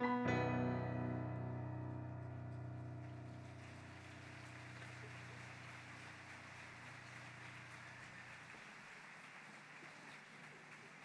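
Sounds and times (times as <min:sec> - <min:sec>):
sustained piano chord: 0:00.0 - 0:07.4.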